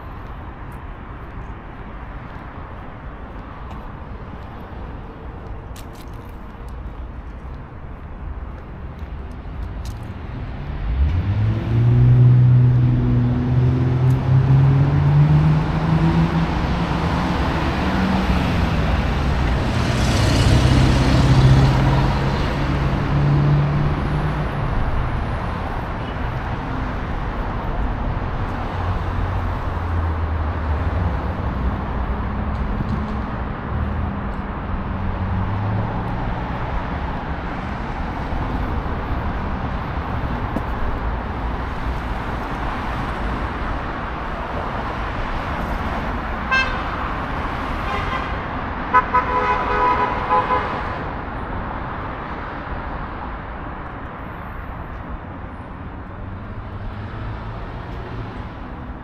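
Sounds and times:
hum of passing cars: 0.0 - 59.0
vehicle engine accelerating: 10.6 - 24.4.

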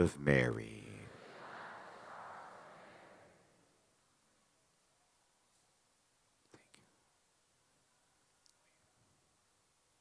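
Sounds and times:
faint whisper: 0.6 - 3.7, 6.4 - 7.0.

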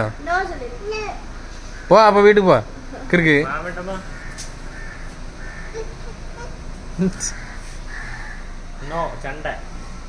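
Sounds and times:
bird cawing: 0.9 - 2.2, 3.5 - 8.7.

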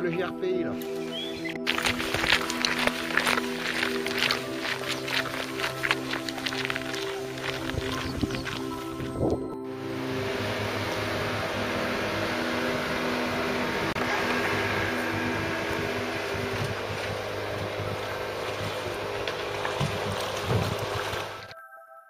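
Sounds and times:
fishing boat engine: 0.8 - 21.5
outboard motor running: 0.8 - 21.5
water churning: 0.9 - 21.5.

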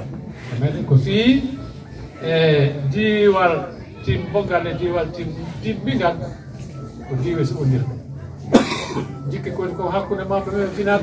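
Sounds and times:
sharp cough: 8.5 - 9.2.

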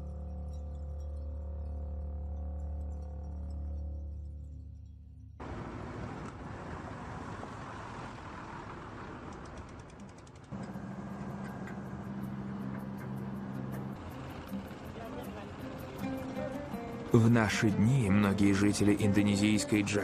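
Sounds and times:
low engine hum: 5.3 - 20.0
truck engines running: 5.4 - 20.0.

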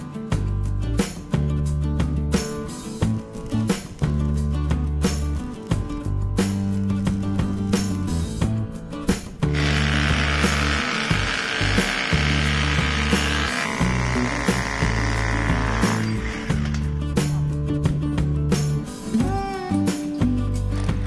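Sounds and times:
background music with bass line: 0.0 - 21.0
hammer drill boring into concrete: 9.5 - 17.0.

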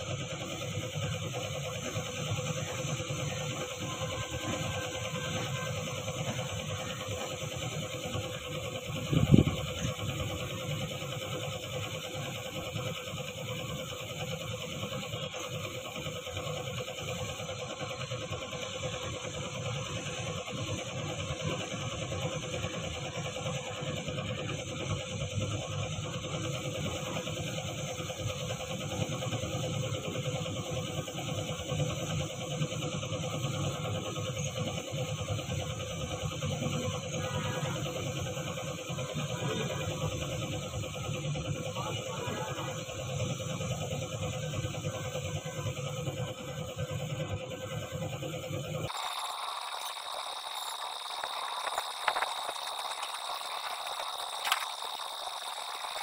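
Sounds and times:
air compressor humming: 0.0 - 56.0
paint spray gun hissing: 4.9 - 17.5, 42.7 - 56.0.

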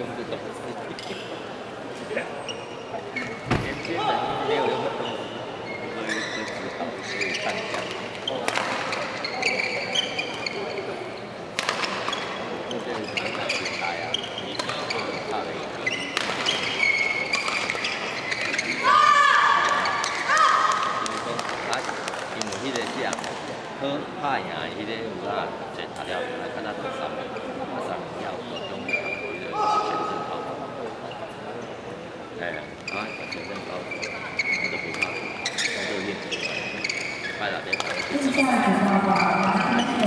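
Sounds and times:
shoes squealing on court: 5.6 - 10.9, 13.0 - 18.8, 32.8 - 38.1
rackets hitting shuttlecock: 7.7 - 9.0, 11.6 - 12.1, 16.1 - 16.6.

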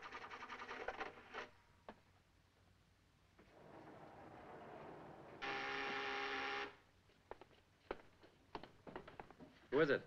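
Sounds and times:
electric buzzer: 5.4 - 6.8.

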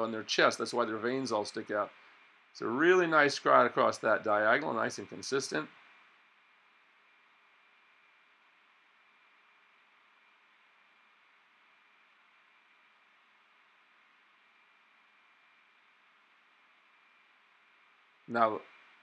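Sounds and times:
recording hiss: 0.0 - 19.0.

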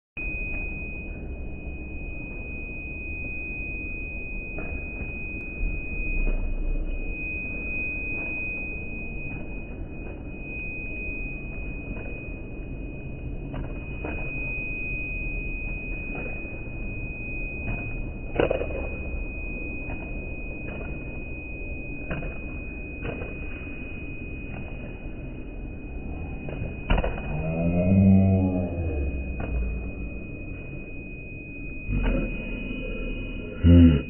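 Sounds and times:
high-pitched steady tone: 0.2 - 34.0
low rumble of large hall: 0.2 - 34.0.

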